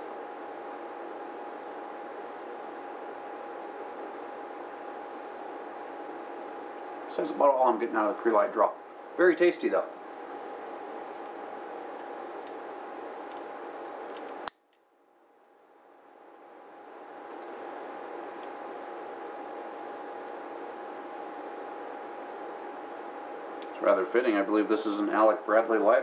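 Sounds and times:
electric fan running: 0.0 - 26.0.

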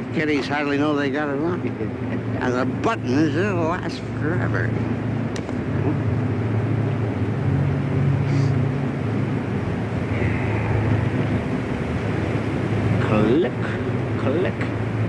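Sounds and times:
low mechanical drone: 0.0 - 15.0.

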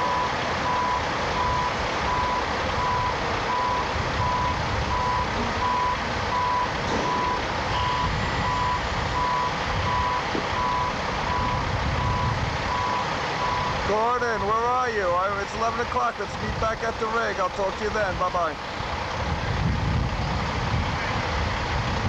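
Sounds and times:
back-up alarm beeping: 0.0 - 13.8
heavy machinery rumbling: 0.0 - 22.0.

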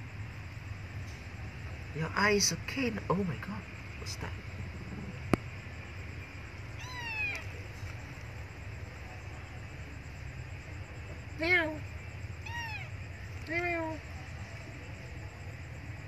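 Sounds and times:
cat meowing: 6.7 - 7.6, 12.4 - 13.0.

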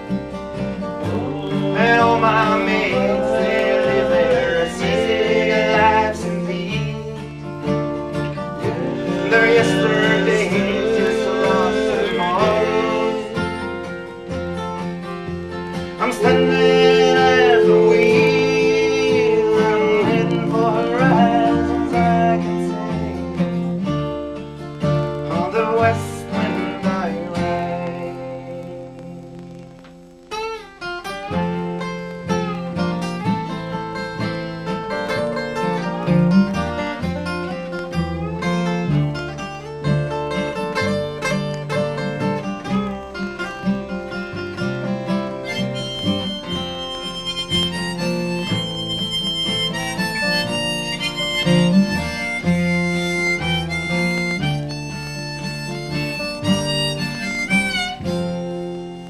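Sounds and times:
acoustic folk band playing: 0.0 - 59.0
harmonica: 0.0 - 59.0.

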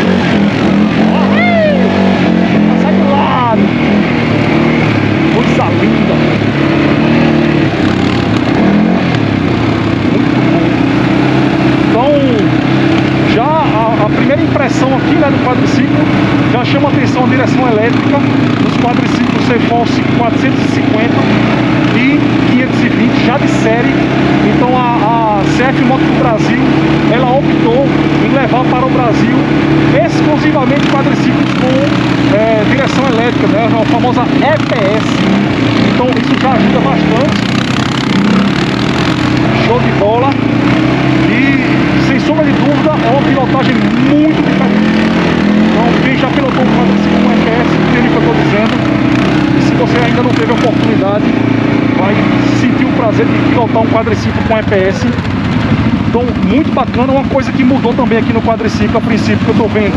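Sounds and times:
quad bike engine running: 0.0 - 59.9.

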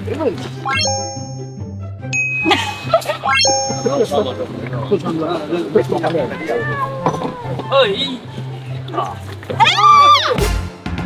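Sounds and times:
bright chime dings: 0.7 - 4.5.

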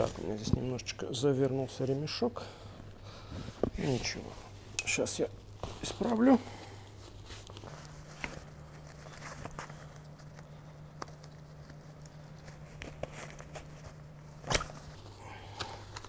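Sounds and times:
low steady hum: 0.0 - 16.0
rustling and small clicks of strap: 7.3 - 15.0.

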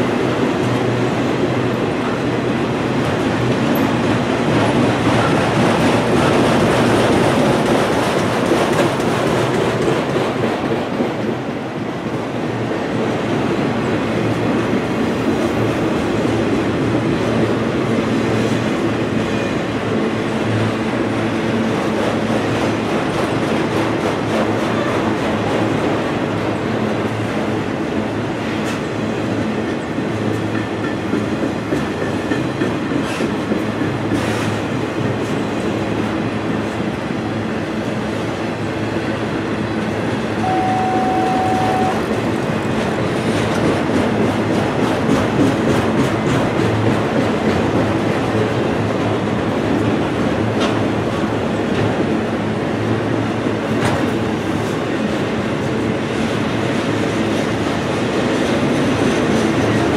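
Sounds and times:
train wheels rumbling on rails: 0.0 - 59.9
brief steady tone: 40.4 - 42.1.

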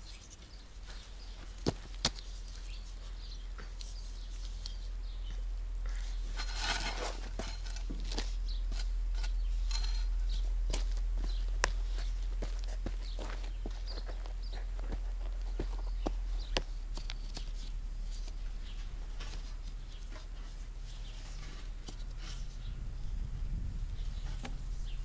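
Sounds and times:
steady low hum: 0.0 - 25.0
garden tool digging in soil: 6.0 - 12.8.

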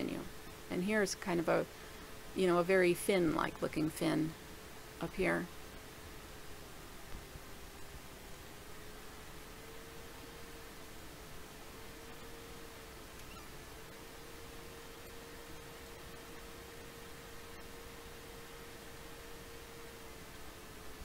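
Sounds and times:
faint steady hiss: 0.0 - 21.0
thin steady hum tone: 0.0 - 21.0.

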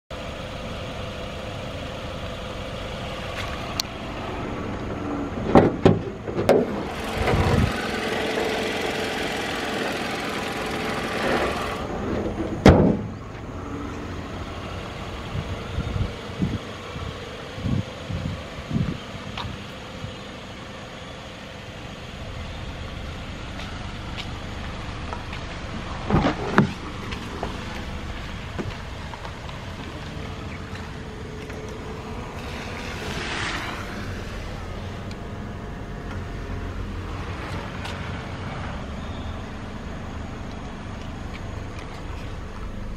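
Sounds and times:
car engine idling: 0.1 - 42.9.

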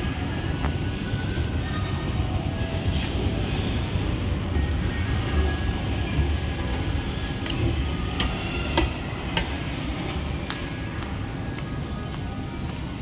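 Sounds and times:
mall background noise: 0.0 - 13.0.

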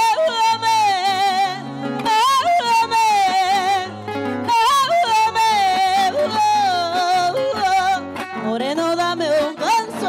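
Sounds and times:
acoustic guitars: 0.0 - 10.0
woman singing: 0.0 - 10.0.

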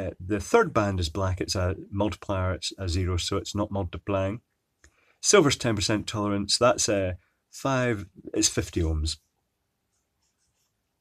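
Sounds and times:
marker scratching on paper: 9.9 - 10.9.

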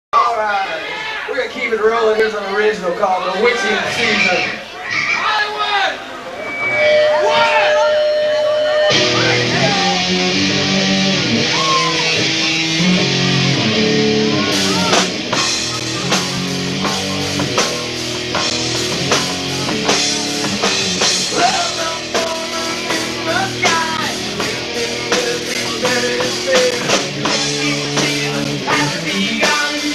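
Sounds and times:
electric guitars and bass chords: 6.2 - 29.9
drum kit hits: 8.9 - 29.9.

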